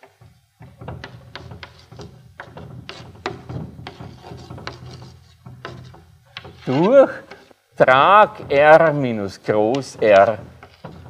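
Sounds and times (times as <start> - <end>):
chalk tapping on blackboard: 0.0 - 7.6, 8.3 - 11.0
chalk scraping on blackboard: 0.8 - 7.6, 9.5 - 11.0.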